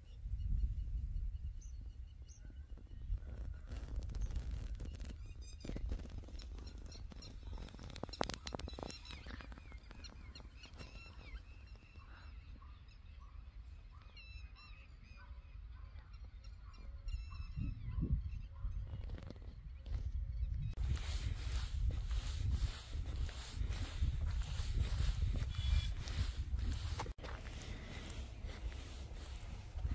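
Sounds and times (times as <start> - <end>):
birds chirping: 0.1 - 29.9.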